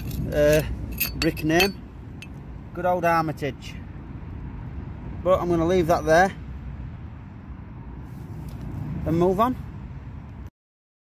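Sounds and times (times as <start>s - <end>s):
low outdoor rumble: 0.0s - 10.5s.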